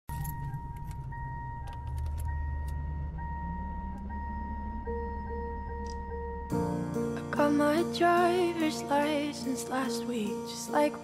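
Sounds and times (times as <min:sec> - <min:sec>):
car engine idling: 0:00.1 - 0:06.6
car warning chime dinging: 0:00.1 - 0:06.6
low sustained musical note: 0:00.1 - 0:10.6.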